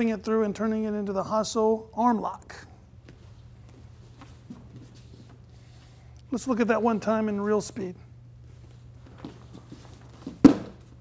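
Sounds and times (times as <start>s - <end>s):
bare feet on mat: 3.0s - 6.0s, 8.4s - 11.0s
sharp impact on mat: 10.2s - 10.9s.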